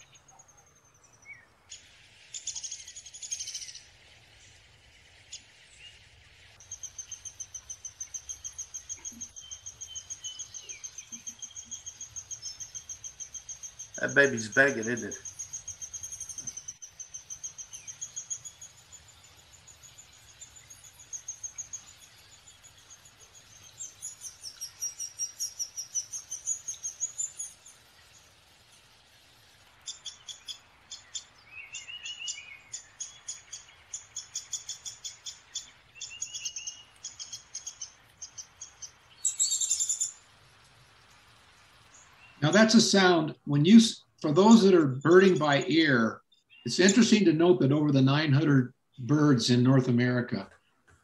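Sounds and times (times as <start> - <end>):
nestling begging calls: 1.2 - 4.6, 5.2 - 47.2
woodpecker sharp high notes: 14.0 - 15.2.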